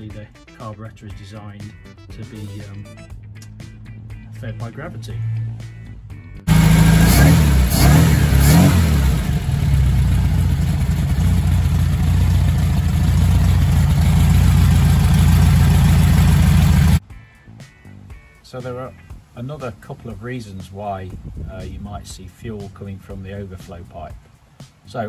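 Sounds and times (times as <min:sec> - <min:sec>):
car engine revving and idling: 0:06.5 - 0:17.0.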